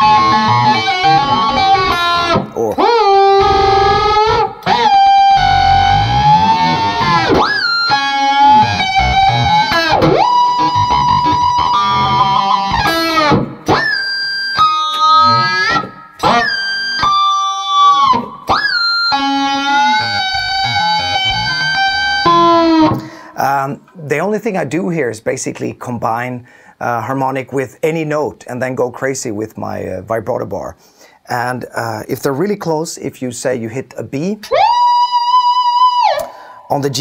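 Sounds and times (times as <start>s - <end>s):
electric guitar harmonics bending: 0.0s - 23.2s, 34.4s - 36.8s.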